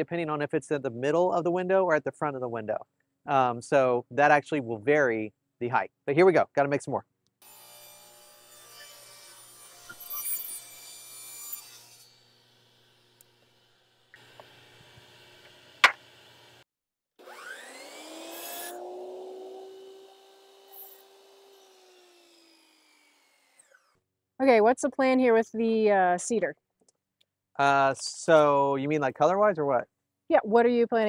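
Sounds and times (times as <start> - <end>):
miter saw cutting board: 7.4 - 16.6, 17.2 - 24.0
table saw ripping wood: 7.4 - 16.6, 17.2 - 24.0.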